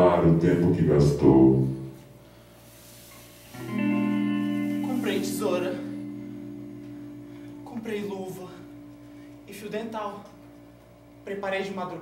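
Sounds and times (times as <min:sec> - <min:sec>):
guitar chord ringing: 0:03.6 - 0:10.8.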